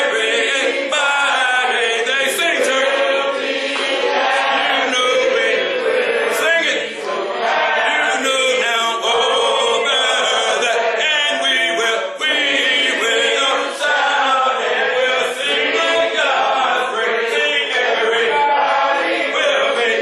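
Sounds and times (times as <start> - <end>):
congregation singing a hymn: 0.0 - 20.0.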